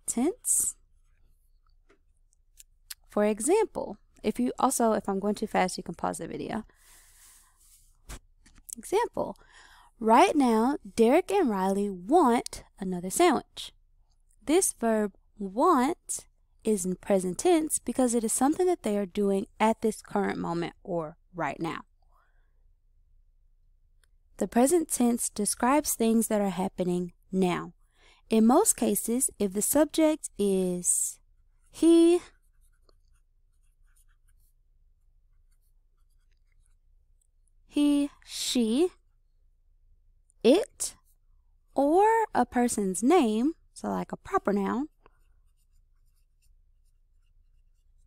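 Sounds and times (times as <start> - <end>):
faint breath: 6.7 - 7.8, 9.4 - 10.0, 27.8 - 28.3
pen scratching on paper: 31.3 - 37.0, 44.3 - 48.0.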